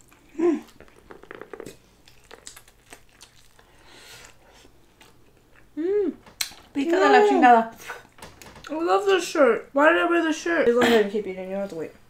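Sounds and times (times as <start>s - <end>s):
chewing corn on the cob: 0.0s - 5.7s.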